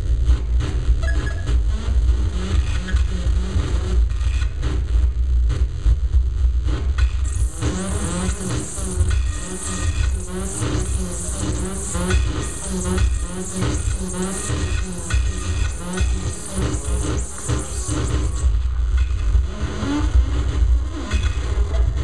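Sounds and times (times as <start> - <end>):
low bass drone: 0.0 - 22.0.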